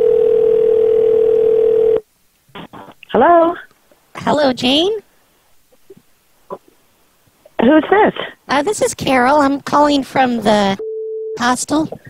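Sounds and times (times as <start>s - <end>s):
telephone dial tone: 0.0s - 2.0s.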